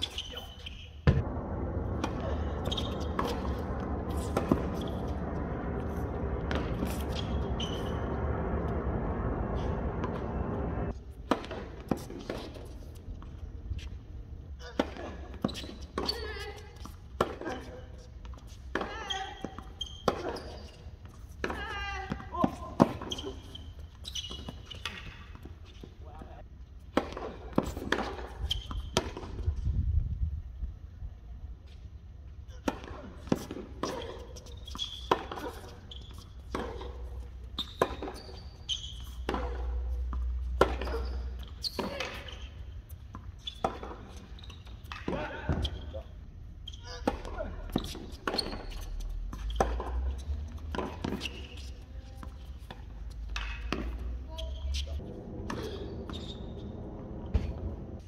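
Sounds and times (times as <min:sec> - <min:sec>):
tennis balls struck by rackets: 0:01.0 - 0:13.9, 0:26.9 - 0:29.5, 0:36.4 - 0:38.4, 0:39.1 - 0:42.3, 0:52.2 - 0:54.2
tennis balls bouncing on court: 0:01.0 - 0:14.0, 0:14.6 - 0:29.5, 0:32.5 - 0:45.8, 0:47.0 - 0:54.8
steady drone: 0:01.2 - 0:11.0.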